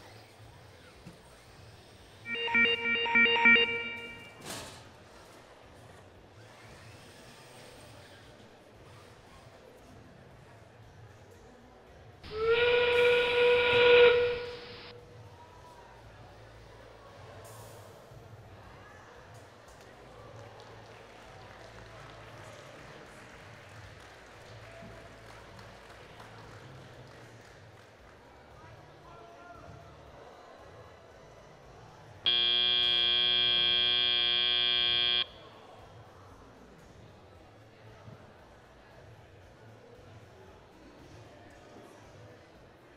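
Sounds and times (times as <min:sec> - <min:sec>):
steady electronic buzzer: 0:02.3 - 0:04.4, 0:12.3 - 0:14.9, 0:32.3 - 0:35.4
whistle-like tone over loudspeakers: 0:02.3 - 0:04.5, 0:12.3 - 0:14.9, 0:32.3 - 0:35.4.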